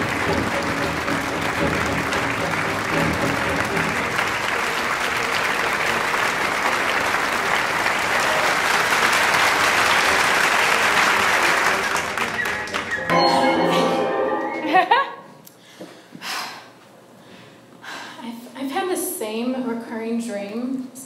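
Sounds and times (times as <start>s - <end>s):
audience applauding: 0.0s - 14.0s.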